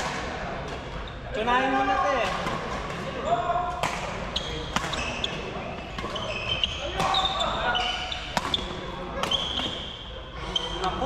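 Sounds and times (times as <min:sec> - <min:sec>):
rackets hitting shuttlecocks: 0:03.7 - 0:06.3, 0:08.3 - 0:09.8.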